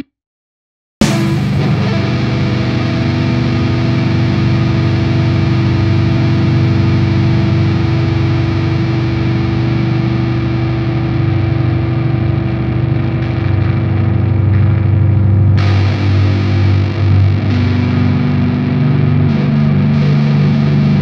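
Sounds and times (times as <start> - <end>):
distorted electric guitars metal riff: 1.0 - 21.0.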